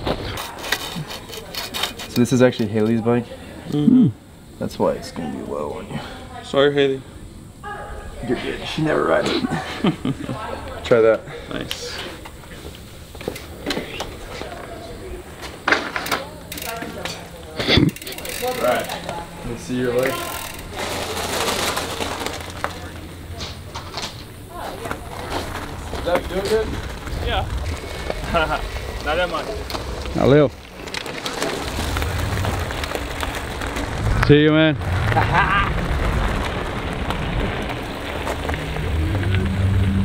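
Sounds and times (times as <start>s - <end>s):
bike scrape: 0.0s - 3.6s, 7.6s - 40.0s
bike knocks and rattles: 12.2s - 34.7s
bike freehub ratcheting ticks: 16.0s - 17.2s, 17.8s - 19.2s, 20.1s - 20.7s.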